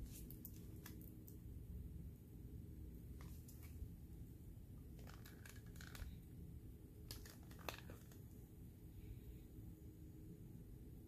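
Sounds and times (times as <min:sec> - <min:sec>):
faint crinkling and scratching: 0:04.8 - 0:06.3, 0:07.1 - 0:08.4.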